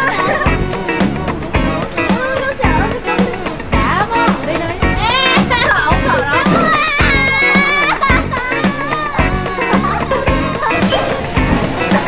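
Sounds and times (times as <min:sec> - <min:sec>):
music with steady beat: 0:00.0 - 0:12.0
girl screaming: 0:05.0 - 0:09.8.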